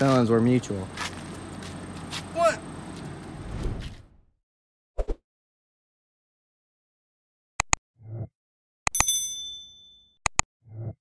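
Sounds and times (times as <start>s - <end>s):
notification bell ding: 8.9s - 10.1s.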